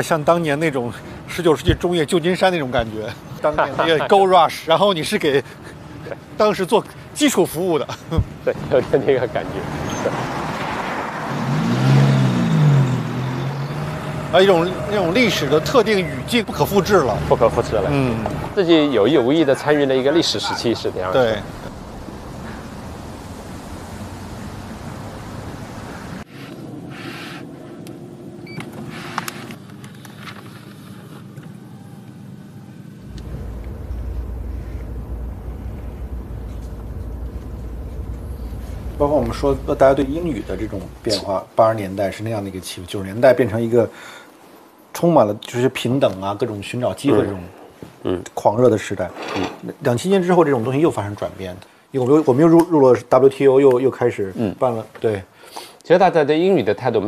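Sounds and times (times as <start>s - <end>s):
street traffic noise: 0.0s - 57.0s
vehicle engine approaching: 8.5s - 41.4s
low road rumble in car: 27.7s - 41.2s.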